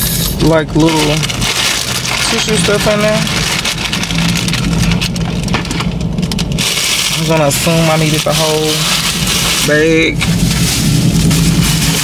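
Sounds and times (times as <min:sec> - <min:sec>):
low hum: 0:00.0 - 0:12.0
paper rustling and crinkling: 0:00.8 - 0:12.0.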